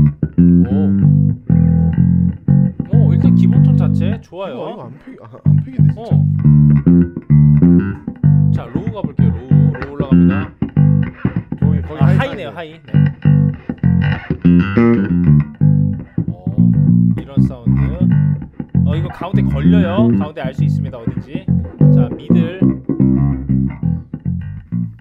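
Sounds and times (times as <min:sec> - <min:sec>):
electric bass guitar notes: 0:00.0 - 0:04.2, 0:05.4 - 0:25.0.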